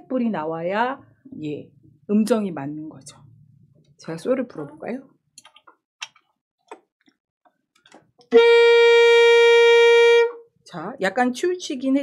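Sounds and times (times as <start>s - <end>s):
saxophone long steady note: 8.3s - 10.4s.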